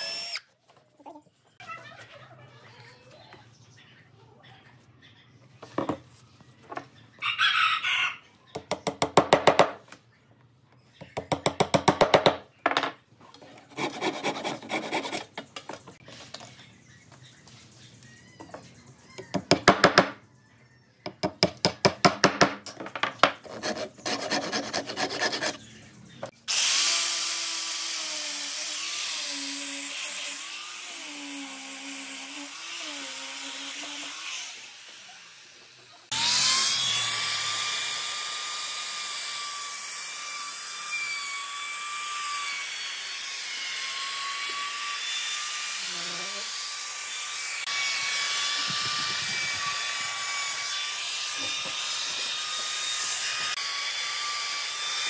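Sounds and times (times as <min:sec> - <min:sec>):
power tool whining: 0:26.5 - 0:55.0
router cutting wood: 0:26.5 - 0:55.0.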